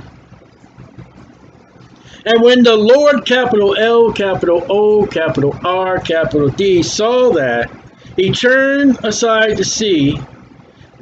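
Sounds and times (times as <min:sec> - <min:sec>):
faint background hiss: 0:00.0 - 0:11.0
low hum: 0:00.0 - 0:11.0.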